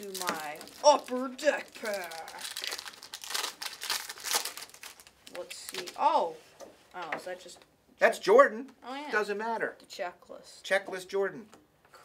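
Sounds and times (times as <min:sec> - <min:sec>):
card pack wrapper crinkling: 0:00.0 - 0:06.1.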